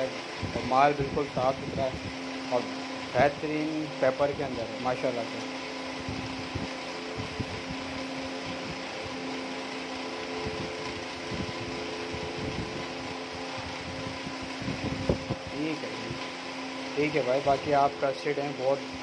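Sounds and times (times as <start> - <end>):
electric fan whirring: 0.0 - 19.0.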